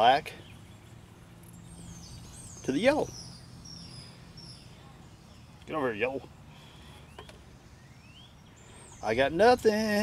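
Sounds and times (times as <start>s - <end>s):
faint bird chirps: 0.0s - 9.4s.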